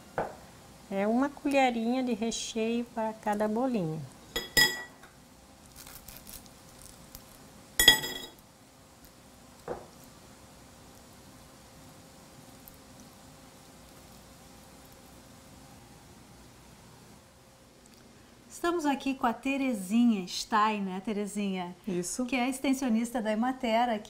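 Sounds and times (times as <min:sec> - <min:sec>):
spoon clinking glass bowl: 0:04.4 - 0:05.0, 0:07.8 - 0:08.4.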